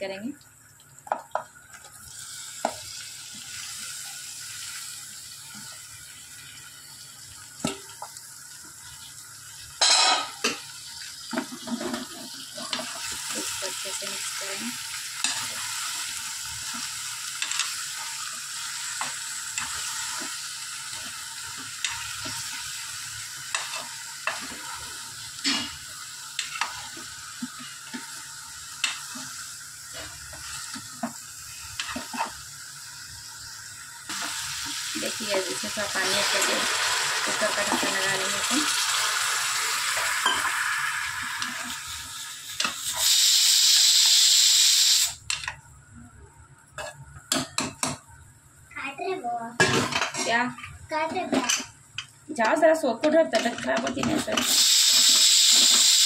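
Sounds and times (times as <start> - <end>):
frying sizzle: 0.0 - 56.0.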